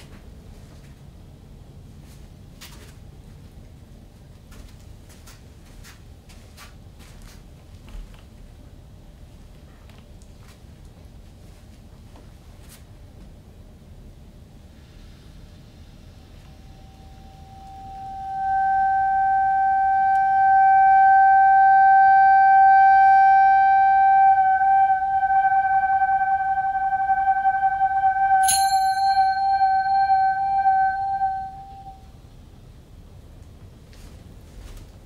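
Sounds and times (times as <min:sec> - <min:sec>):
bright struck sound ringing: 0:16.5 - 0:32.1
accordion holding a high note: 0:16.9 - 0:32.1.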